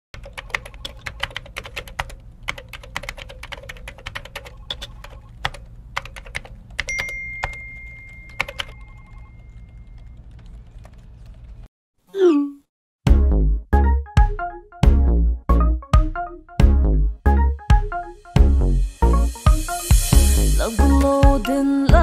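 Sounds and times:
laptop keyboard typing: 0.2s - 11.6s.

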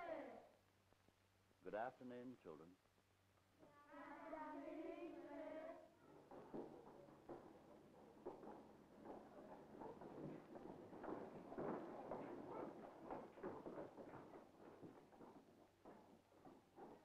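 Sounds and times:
children's footsteps and shuffling: 2.9s - 17.0s.

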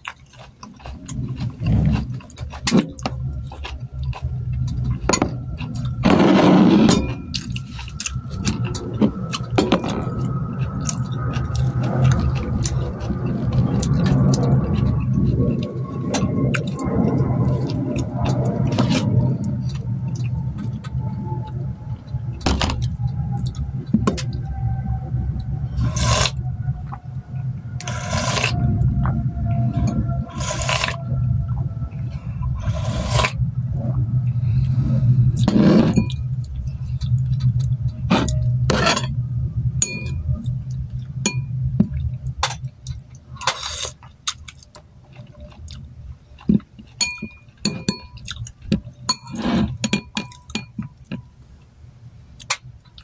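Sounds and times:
steady low hum: 0.0s - 53.0s
person slurping liquid: 6.0s - 9.2s, 25.8s - 26.4s, 27.8s - 28.6s, 30.3s - 31.0s, 32.6s - 33.4s, 34.8s - 36.1s
spoon clinking against bowl: 39.8s - 40.2s, 47.0s - 48.2s, 49.1s - 51.3s.

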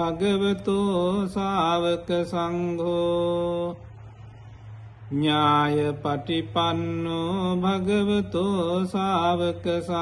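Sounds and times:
chanting voice: 0.0s - 10.0s.

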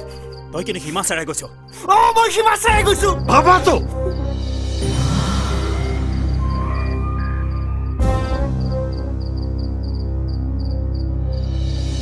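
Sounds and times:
cricket chirps: 0.0s - 12.0s
low film score drone: 4.0s - 12.0s.

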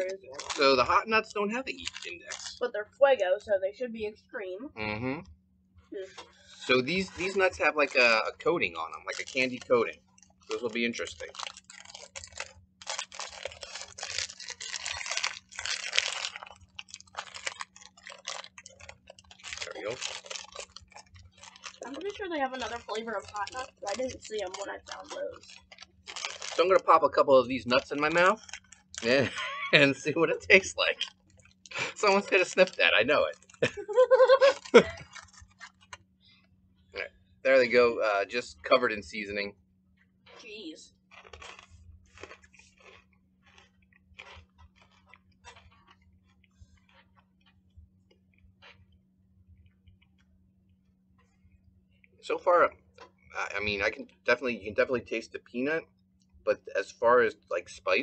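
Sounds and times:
crunching and chewing peanuts: 0.0s - 2.6s, 6.1s - 39.4s, 40.2s - 55.0s
plastic snack bag crinkling: 0.0s - 2.6s, 6.6s - 8.2s, 8.8s - 36.1s, 41.1s - 48.8s.

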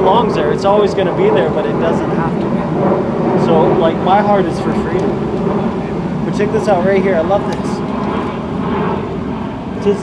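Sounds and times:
man reading aloud: 0.0s - 2.6s, 3.4s - 5.1s, 6.2s - 7.8s, 9.8s - 10.0s
low outdoor rumble: 0.0s - 10.0s.

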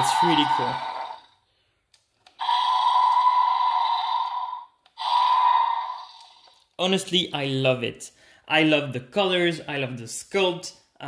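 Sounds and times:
electronic toy roar: 0.0s - 1.4s, 2.3s - 6.6s.

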